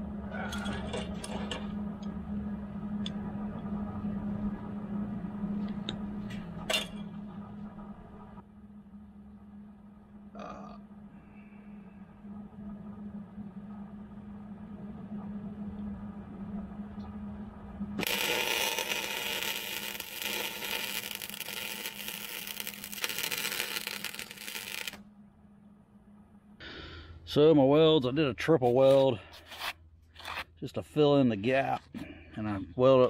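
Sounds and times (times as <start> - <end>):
arc welding crackling and hissing: 18.0 - 25.0.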